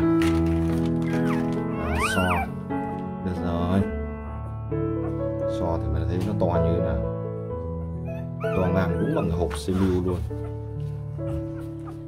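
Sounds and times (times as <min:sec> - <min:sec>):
background music: 0:00.0 - 0:12.0
puppy squealing: 0:01.0 - 0:02.6, 0:08.0 - 0:10.6, 0:11.3 - 0:12.0.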